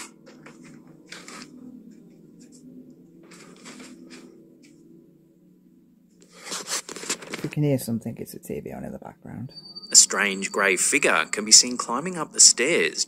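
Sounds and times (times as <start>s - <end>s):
muffled tv playing: 0.0s - 13.0s
steady low hum: 0.0s - 13.0s.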